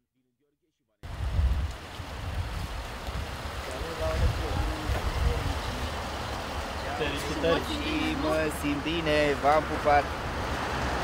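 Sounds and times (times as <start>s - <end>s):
wind rumble on microphone: 1.0s - 6.9s
faint voices: 3.6s - 10.1s.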